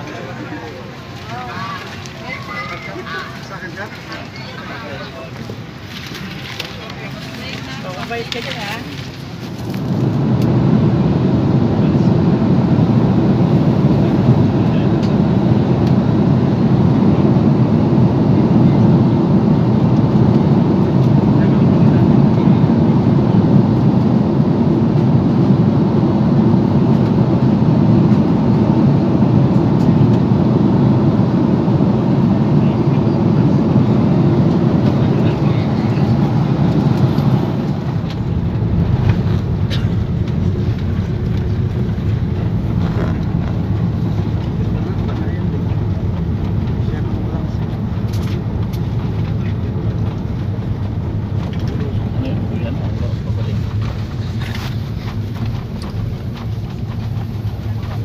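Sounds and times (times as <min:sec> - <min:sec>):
jet engine and airflow rumble: 0:00.0 - 0:58.0.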